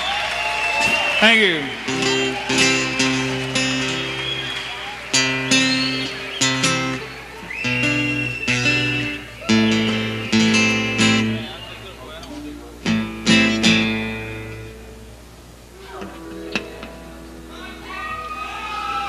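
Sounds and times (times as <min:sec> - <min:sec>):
strummed acoustic guitar chords: 0:01.3 - 0:18.9
high bending lead guitar line: 0:01.6 - 0:19.0.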